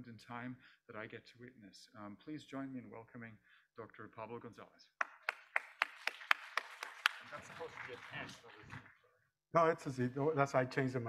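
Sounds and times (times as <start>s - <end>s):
audience applause: 5.0s - 8.9s
sharp claps of one person: 5.0s - 9.0s.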